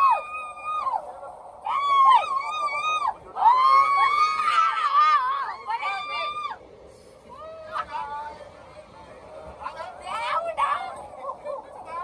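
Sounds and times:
people whooping: 0:00.0 - 0:06.6.

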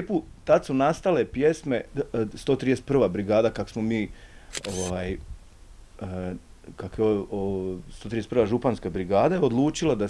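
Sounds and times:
sharp click: 0:04.5 - 0:05.0.

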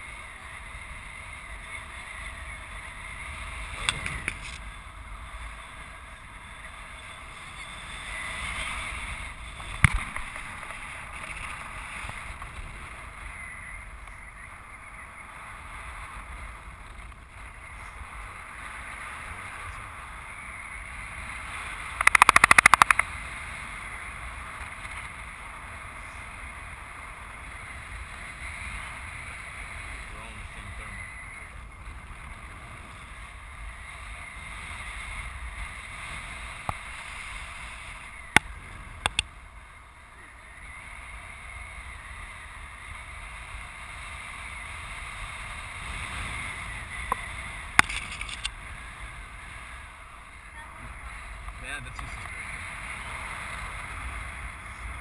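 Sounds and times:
loud crackling burst: 0:21.9 - 0:23.3
sharp clicks: 0:22.0 - 0:23.1, 0:38.3 - 0:39.3.

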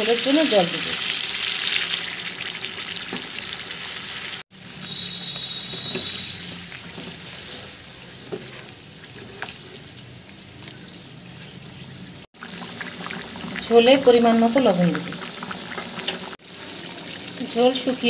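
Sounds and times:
gravy sizzling and bubbling: 0:00.0 - 0:18.0
spatula stirring: 0:04.9 - 0:10.0.

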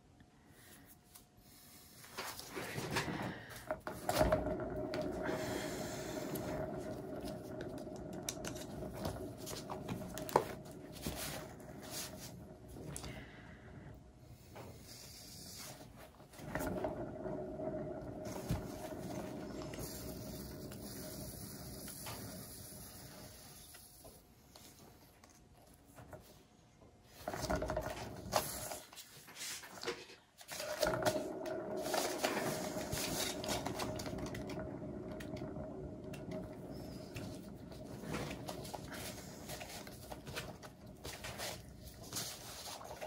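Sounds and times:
turntable rolling hum: 0:02.0 - 0:24.8, 0:27.0 - 0:43.0.

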